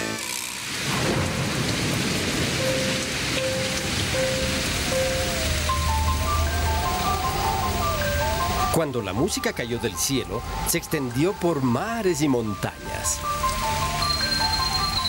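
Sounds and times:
rain falling: 0:00.0 - 0:15.0
gentle music: 0:02.6 - 0:15.0.

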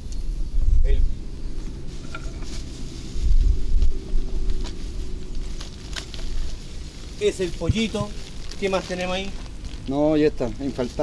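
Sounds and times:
wind buffeting microphone: 0:02.2 - 0:05.5
plastic bag crinkling: 0:04.7 - 0:11.0.

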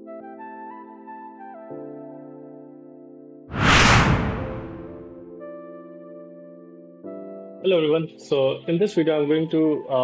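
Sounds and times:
loud whoosh: 0:03.5 - 0:05.2.

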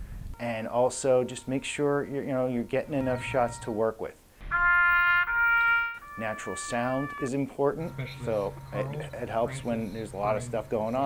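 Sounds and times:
bugle playing held notes: 0:02.8 - 0:03.8, 0:04.5 - 0:10.5.

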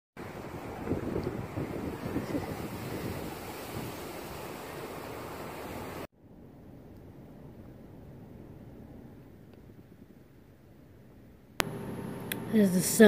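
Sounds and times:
wind buffeting microphone: 0:00.2 - 0:04.6
steady outdoor hiss: 0:00.2 - 0:13.0.

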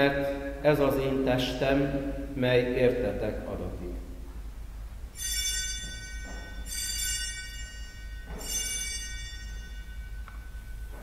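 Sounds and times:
altar bell ringing: 0:05.1 - 0:11.0.

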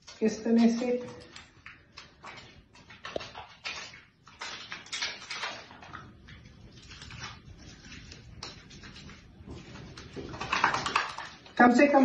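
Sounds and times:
soapy hands rubbing: 0:00.0 - 0:12.0.

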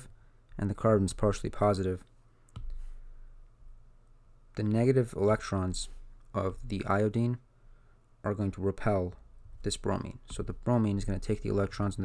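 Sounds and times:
faint low hum: 0:00.0 - 0:12.0
soft hiss: 0:00.0 - 0:12.0.

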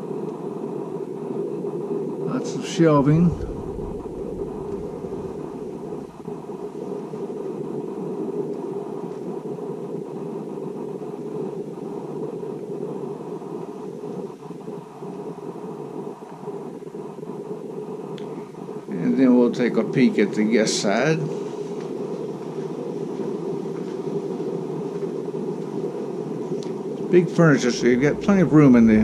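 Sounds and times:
dull rumbling noise: 0:02.3 - 0:08.2, 0:25.9 - 0:29.0.

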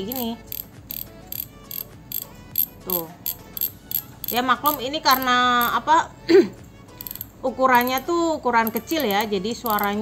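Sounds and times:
fishing reel ticking: 0:00.0 - 0:05.8, 0:07.0 - 0:10.0.

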